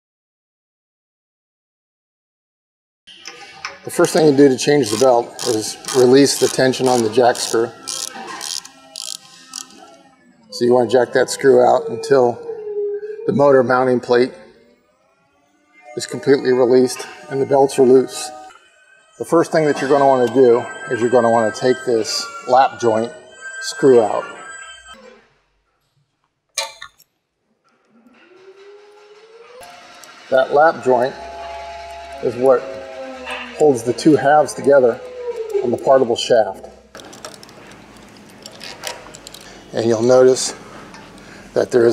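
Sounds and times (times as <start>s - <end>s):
ratchet wrench clicking: 4.8s - 9.8s
faint rising tone: 28.1s - 35.9s.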